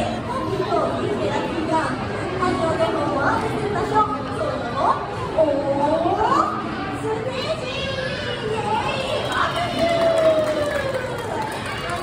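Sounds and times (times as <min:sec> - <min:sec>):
voices chattering and calling out: 0:00.0 - 0:12.0.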